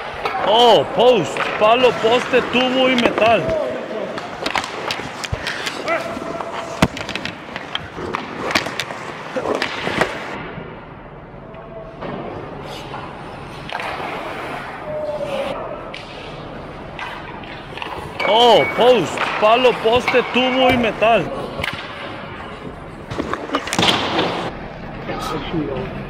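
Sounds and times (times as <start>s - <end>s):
sticks and puck clacking: 0.0s - 10.6s, 12.0s - 24.5s
players calling out: 0.1s - 7.8s, 18.0s - 21.6s
skate blades scraping ice: 1.3s - 10.4s.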